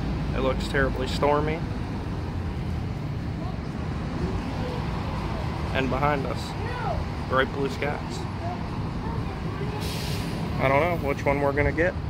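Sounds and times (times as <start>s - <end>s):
traffic rumble: 0.0s - 12.0s
faint voices: 3.1s - 11.8s.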